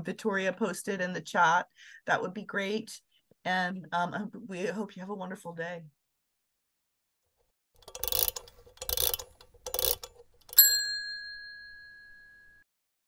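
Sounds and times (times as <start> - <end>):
bright bell-like ding: 10.6 - 12.6.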